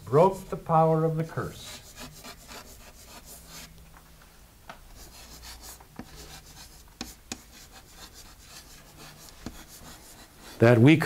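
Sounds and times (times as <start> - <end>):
chalk scratching on chalkboard: 1.5 - 3.8, 5.0 - 10.8.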